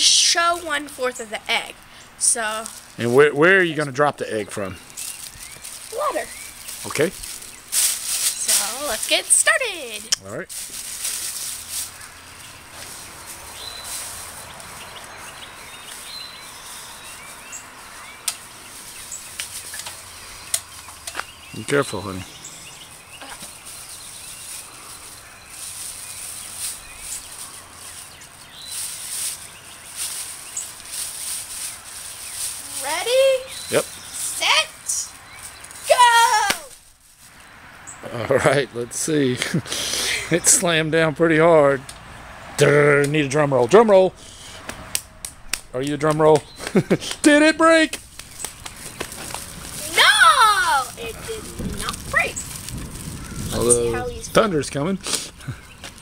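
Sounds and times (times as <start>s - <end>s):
soft rustling: 1.6s - 3.1s, 4.8s - 21.1s, 22.2s - 37.5s, 48.0s - 54.3s
bird chirps: 4.3s - 9.0s, 11.9s - 30.9s, 31.6s - 36.0s.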